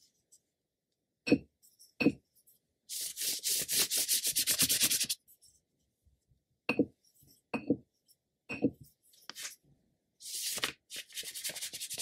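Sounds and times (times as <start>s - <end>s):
brush scrubbing across paper: 2.9s - 5.2s, 11.0s - 12.0s.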